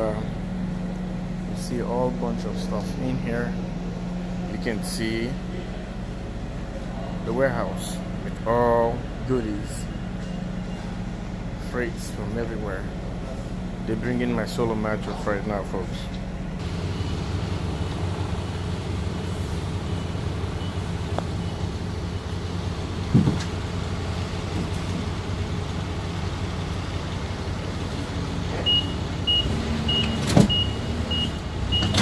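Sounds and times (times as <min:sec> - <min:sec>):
engine running steadily: 0:00.0 - 0:32.0
forklift reversing beeper: 0:09.4 - 0:11.2, 0:16.6 - 0:23.0, 0:28.5 - 0:32.0.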